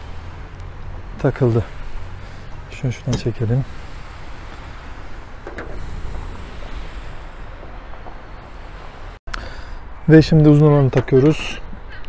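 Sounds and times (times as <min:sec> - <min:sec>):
low rumble and hiss: 0:00.0 - 0:11.9.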